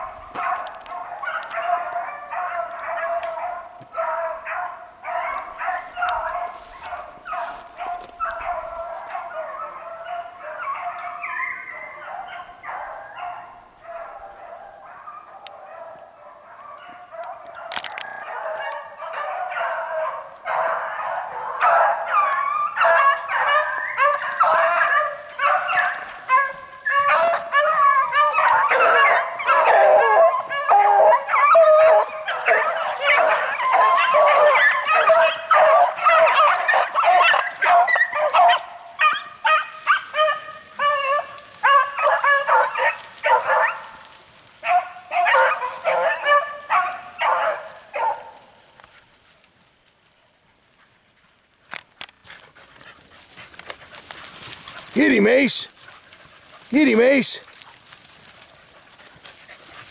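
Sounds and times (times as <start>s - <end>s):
beagles baying: 0.0s - 49.7s, 50.3s - 59.9s.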